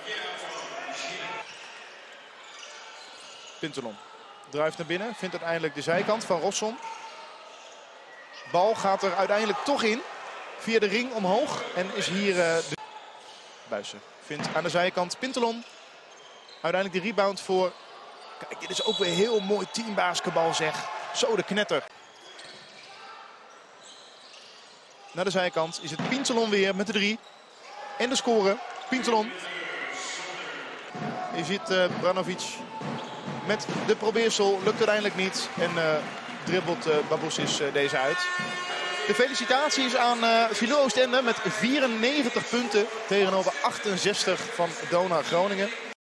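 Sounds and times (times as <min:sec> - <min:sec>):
crowd voices: 0:27.6 - 0:46.0
basketball bouncing on court: 0:31.8 - 0:36.5.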